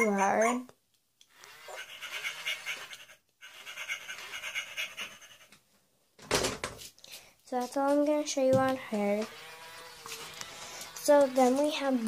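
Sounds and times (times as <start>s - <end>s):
toy dog panting sound: 1.3s - 5.6s.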